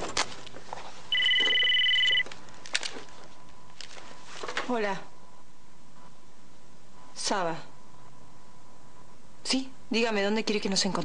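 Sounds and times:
mobile phone ringing: 1.1 - 2.3.

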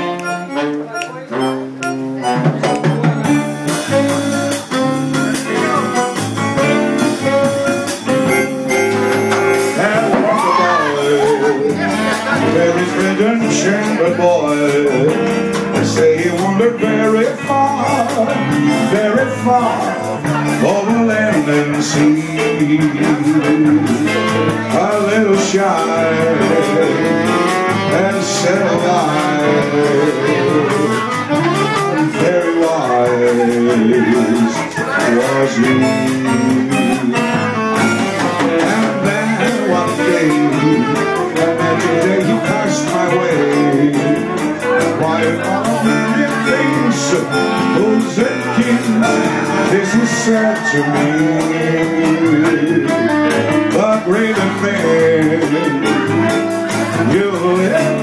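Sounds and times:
electric bass: 0.0 - 58.0
keyboard: 0.0 - 58.0
saxophone: 0.0 - 58.0
drums with cymbal beat: 2.0 - 58.0.

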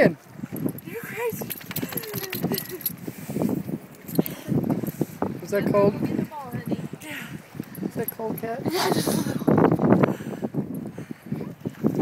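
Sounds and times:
light clinks and jingling rattles: 0.4 - 5.0, 5.6 - 9.0.

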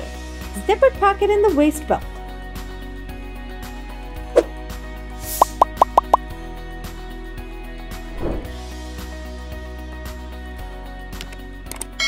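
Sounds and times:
background music: 0.0 - 12.0
rising pop sound effects: 5.3 - 6.3.

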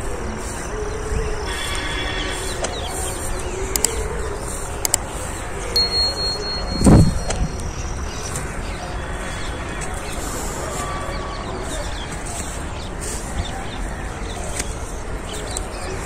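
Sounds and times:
wind rumble on microphone: 0.0 - 16.0
sharp clicks: 3.7 - 4.0
thin high whistle: 5.8 - 7.9.

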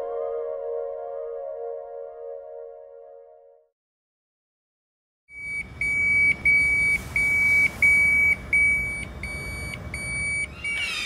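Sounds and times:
electronic alarm beeping: 5.4 - 11.0.

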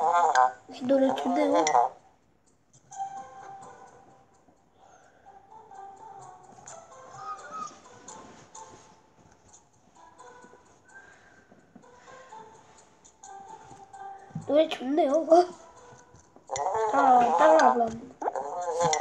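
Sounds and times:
gentle melody of held notes: 2.8 - 19.0.

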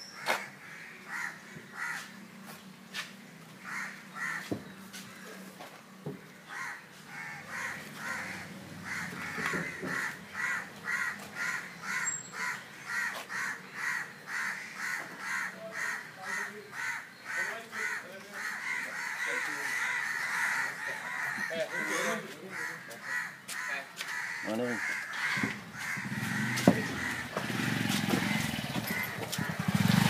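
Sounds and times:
crows cawing: 0.0 - 2.2, 3.5 - 5.4, 6.2 - 30.0.

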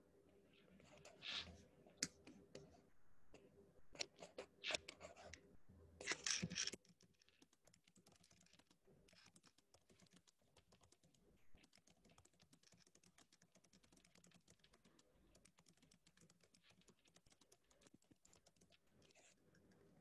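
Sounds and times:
faint keyboard typing: 0.5 - 20.0.

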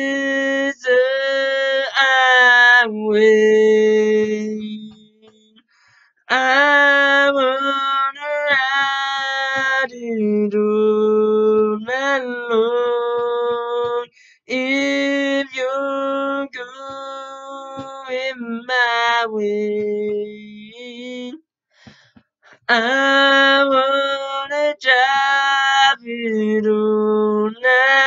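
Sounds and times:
man singing a cappella: 0.0 - 5.6, 6.3 - 21.4, 22.5 - 28.0.

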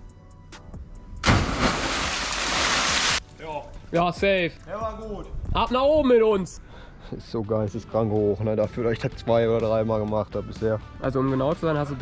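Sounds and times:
person splashing into water: 1.2 - 3.2
rush of spray: 1.6 - 3.2.

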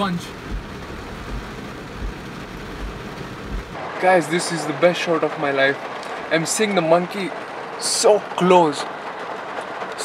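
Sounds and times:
rain on a car: 0.0 - 10.0
low rumble: 0.2 - 3.9.

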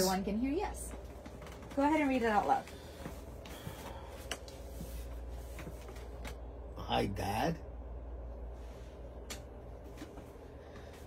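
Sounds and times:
low hum: 0.0 - 11.0.

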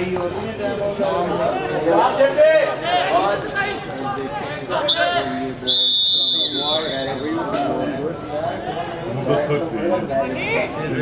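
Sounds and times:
spectators talking: 0.0 - 11.0
referee's whistle blasts: 4.9 - 7.4.

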